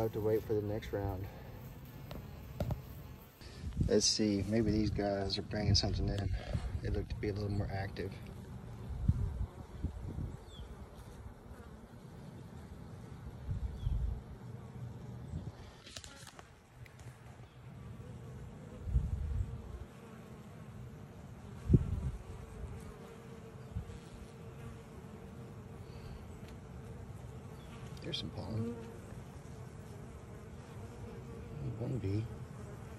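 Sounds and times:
bees buzzing: 0:00.0 - 0:32.9.

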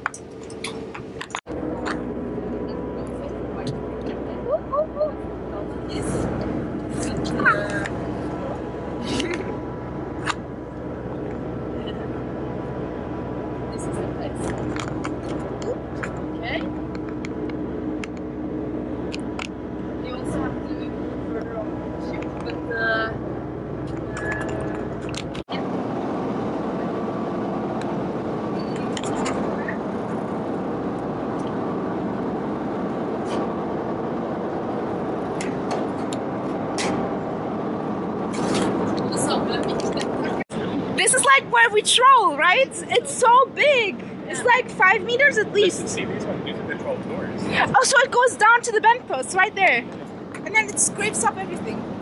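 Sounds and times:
deep engine rumble: 0:00.0 - 0:52.0
ship engines humming: 0:00.0 - 0:52.0
indistinct voices: 0:20.0 - 0:25.7.

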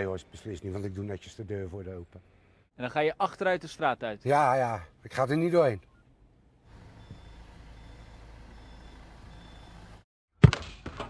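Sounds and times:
van engine running: 0:06.7 - 0:10.0
high reversing beeps: 0:06.8 - 0:10.0.

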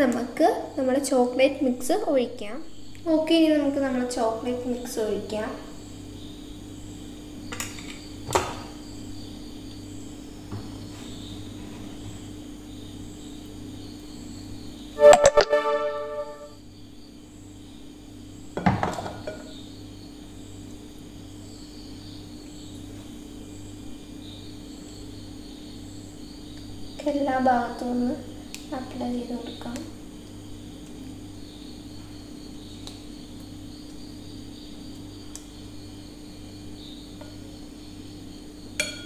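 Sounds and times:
keyboard music: 0:15.0 - 0:16.6.

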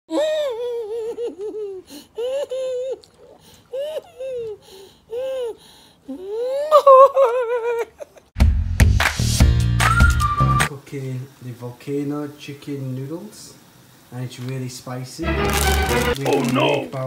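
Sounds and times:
woman laughing: 0:00.1 - 0:04.6, 0:06.2 - 0:08.3
woman wailing: 0:03.7 - 0:08.0.

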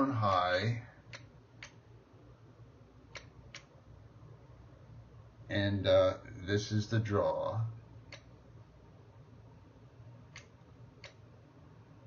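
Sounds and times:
faint low hum: 0:00.0 - 0:12.0
light clicks: 0:10.3 - 0:11.2.

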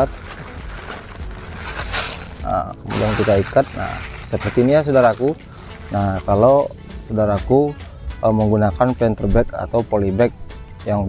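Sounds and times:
plastic bag crinkling: 0:00.0 - 0:06.6.

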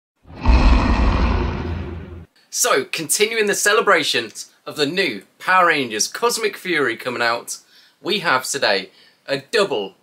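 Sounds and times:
deep rushing swell: 0:00.3 - 0:02.3.

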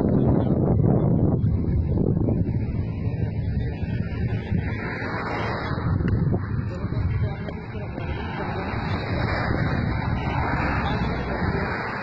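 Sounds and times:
low outdoor rumble: 0:00.0 - 0:12.0
indistinct voices: 0:02.9 - 0:12.0.

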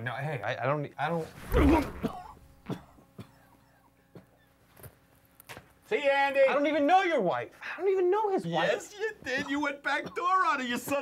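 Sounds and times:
man coughing: 0:01.6 - 0:04.3.

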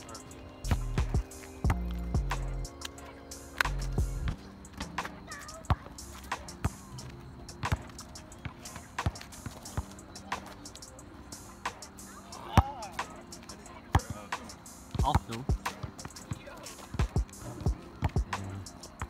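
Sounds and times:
background music with bass: 0:00.0 - 0:05.0, 0:17.0 - 0:19.0
basketball bouncing on asphalt: 0:00.7 - 0:02.5, 0:03.6 - 0:10.6, 0:13.8 - 0:19.0.

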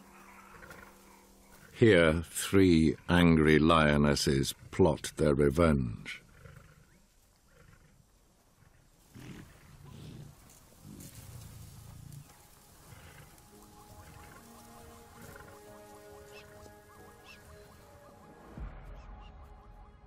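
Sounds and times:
soft sustained music notes: 0:00.0 - 0:04.1, 0:10.5 - 0:20.0
lioness growling: 0:08.6 - 0:13.4.

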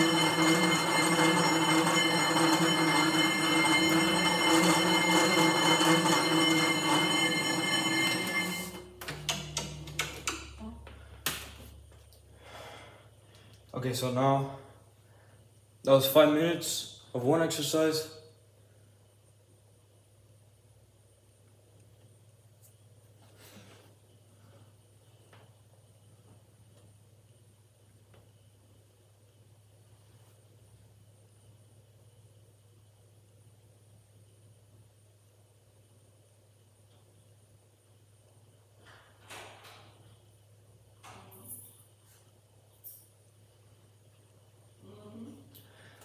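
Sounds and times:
low hum: 0:00.0 - 0:11.2.

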